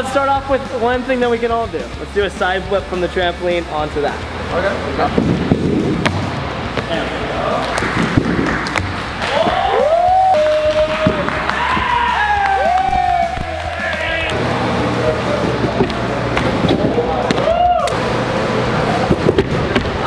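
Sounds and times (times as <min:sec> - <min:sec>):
steady low background sound: 0:01.7 - 0:11.7.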